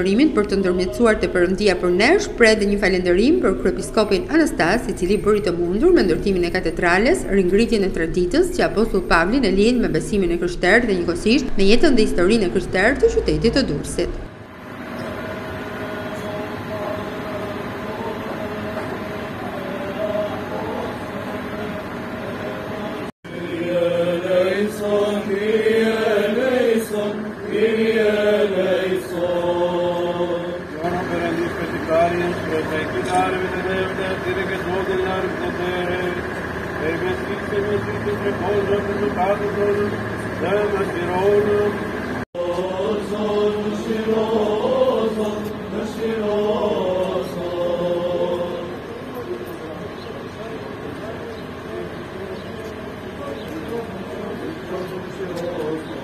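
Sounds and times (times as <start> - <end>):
men chanting a hymn: 0.0 - 11.1, 15.3 - 56.0.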